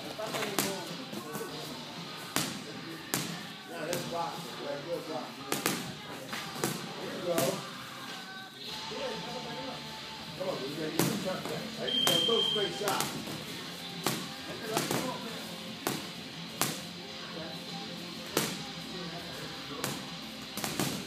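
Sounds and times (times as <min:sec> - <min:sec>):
background music: 0:00.0 - 0:21.0
voices: 0:00.0 - 0:21.0
boxing glove punches: 0:20.6 - 0:21.0.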